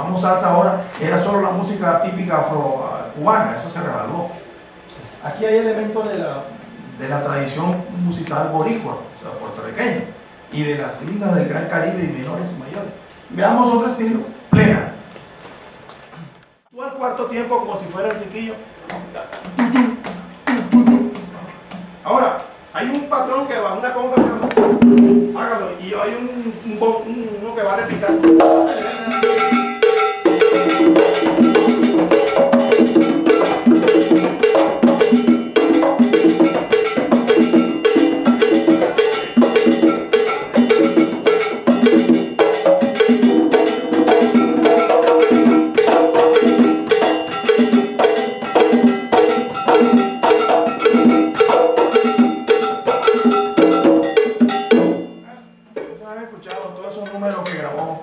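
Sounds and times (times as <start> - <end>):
second drum answering: 14.5 - 15.1, 18.9 - 22.7, 24.1 - 25.6, 27.8 - 55.7
conga drum pattern: 18.8 - 23.1, 24.1 - 25.6, 27.8 - 56.0
bright percussion strokes: 28.2 - 55.7.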